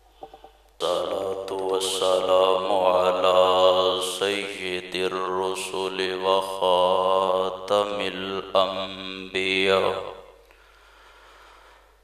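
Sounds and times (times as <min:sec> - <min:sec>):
man chanting: 0:00.8 - 0:10.4.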